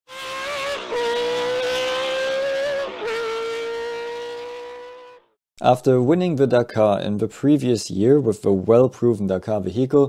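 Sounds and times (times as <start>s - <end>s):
high pitched racing car tone: 0.1s - 5.3s.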